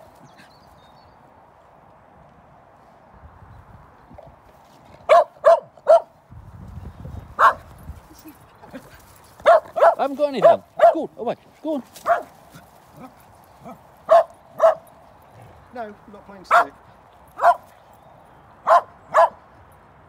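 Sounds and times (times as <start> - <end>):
dog barking: 5.1 - 6.1, 7.4 - 7.6, 9.4 - 11.0, 12.0 - 12.4, 13.6 - 14.9, 16.5 - 16.8, 17.4 - 17.7, 18.6 - 19.4.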